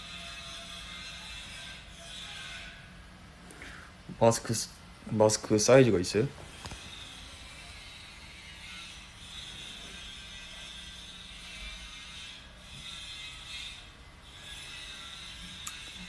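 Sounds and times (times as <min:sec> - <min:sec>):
faint construction noise: 0:00.0 - 0:16.0
steady mechanical hum: 0:00.0 - 0:16.0.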